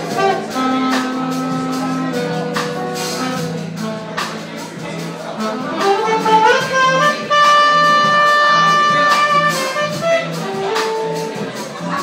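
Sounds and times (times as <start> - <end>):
horn solo: 0.0 - 4.6, 5.2 - 11.8
bass line: 0.0 - 12.0
jazz band playing: 0.0 - 12.0.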